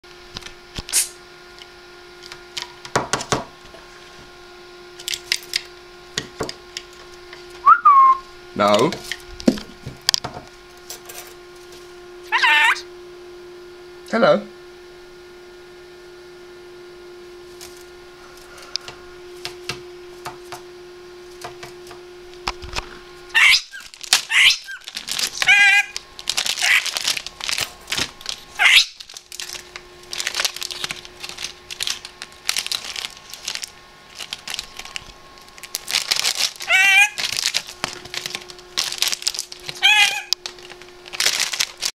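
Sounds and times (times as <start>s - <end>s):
parrot whistle rising and falling: 7.6s - 8.2s, 12.3s - 12.8s, 23.3s - 24.8s, 25.4s - 26.0s, 28.6s - 29.0s, 36.7s - 37.2s, 39.8s - 40.3s
bird moving clicks and rustles: 23.7s - 41.9s
parrot clicking: 36.6s - 37.2s, 39.7s - 40.4s.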